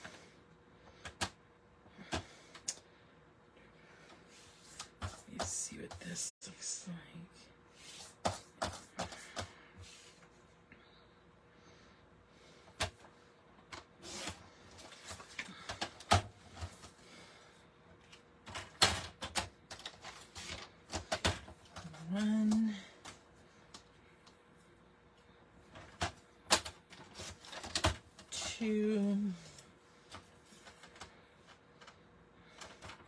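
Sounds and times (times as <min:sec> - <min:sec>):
paper rustling and sliding: 0:14.0 - 0:15.4.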